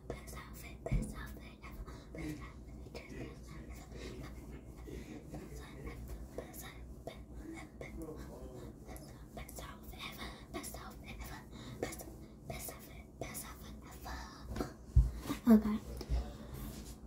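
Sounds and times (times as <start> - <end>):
girl whispering: 15.3 - 16.0.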